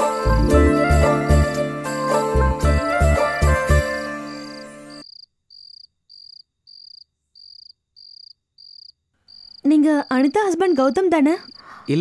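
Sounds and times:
cricket chirping: 4.2s - 12.0s.

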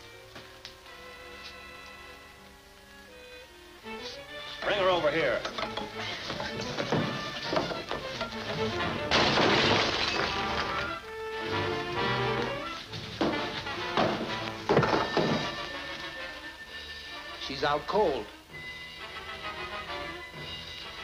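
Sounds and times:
loud shattering crash: 8.8s - 11.0s
dramatic orchestral film music: 11.0s - 14.7s, 15.3s - 21.0s.

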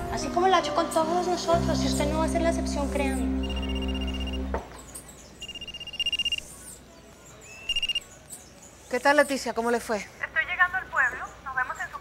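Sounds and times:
trilling phone ringtone: 3.4s - 4.4s, 5.4s - 6.5s, 7.7s - 8.0s.

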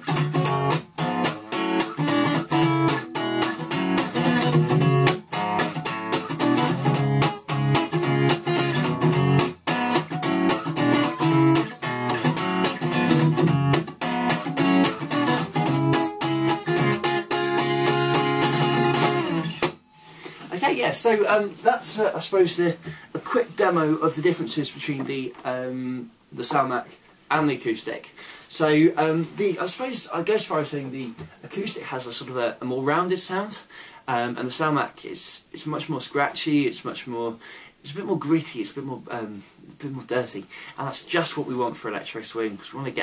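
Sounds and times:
acoustic guitar strummed in chords: 0.0s - 20.2s.

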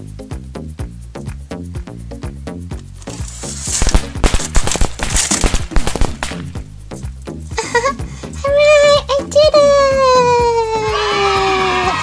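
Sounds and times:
background music: 0.0s - 12.0s
firecracker-like pops with hiss: 3.1s - 7.0s.

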